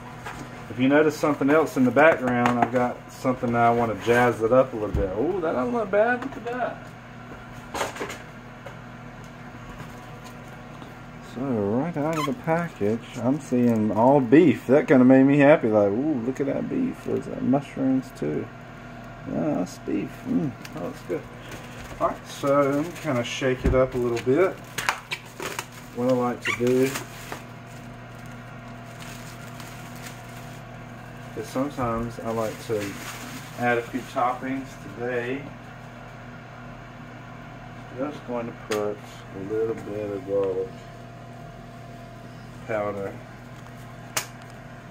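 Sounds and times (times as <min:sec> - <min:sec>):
appliance electrical hum: 0:00.0 - 0:44.9
plastic wrap crinkling: 0:11.6 - 0:14.2, 0:20.6 - 0:34.7.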